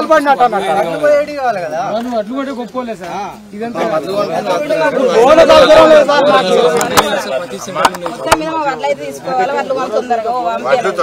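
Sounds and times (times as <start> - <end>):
men talking in a crowd: 0.0 - 11.0.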